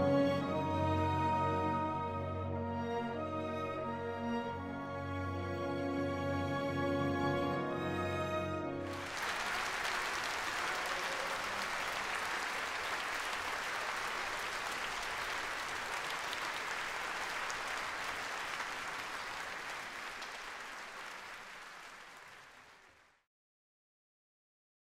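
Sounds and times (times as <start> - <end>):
audience applauding: 8.8 - 23.2.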